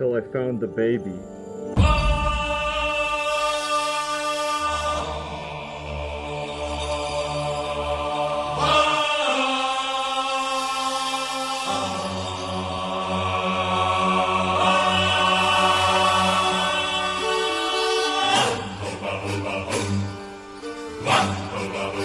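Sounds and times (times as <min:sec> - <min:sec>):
chant-like background music: 0:00.0 - 0:22.0.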